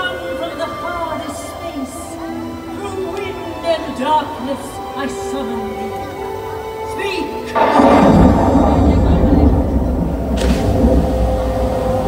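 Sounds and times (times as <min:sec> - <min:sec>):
deep rumbling over loudspeakers: 0:07.6 - 0:12.0
rushing swoosh: 0:07.6 - 0:12.0.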